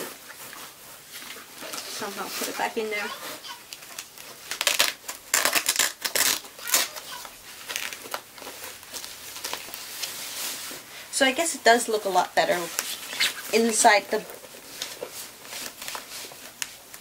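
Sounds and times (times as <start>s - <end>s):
fabric bag rustling and crinkling: 0.0s - 17.0s.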